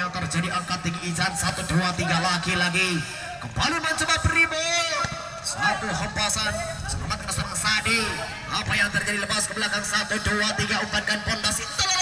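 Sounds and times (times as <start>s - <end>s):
man commentating: 0.0s - 12.0s.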